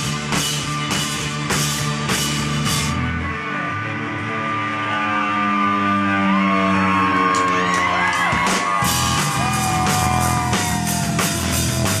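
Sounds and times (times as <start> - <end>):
rock band sustained chord: 0.0 - 12.0.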